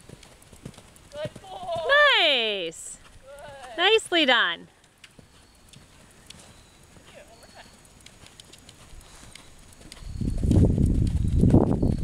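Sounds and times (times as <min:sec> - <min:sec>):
horse hoofbeats on sand: 0:00.0 - 0:12.0.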